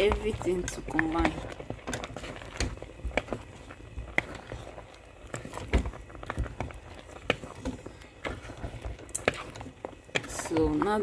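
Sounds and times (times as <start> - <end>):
wooden spoon stirring thick soup: 0.0 - 11.0.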